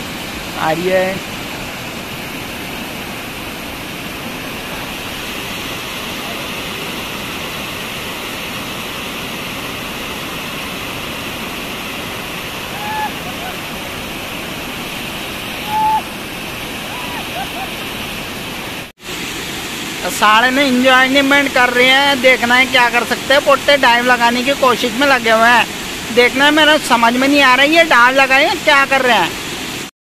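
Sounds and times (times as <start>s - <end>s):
water rushing over weir: 0.0s - 29.9s
person shouting: 12.6s - 13.7s, 15.6s - 16.1s.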